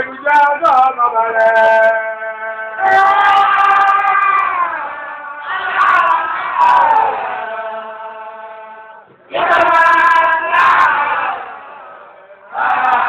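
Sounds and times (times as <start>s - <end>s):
man chanting: 0.0s - 5.2s.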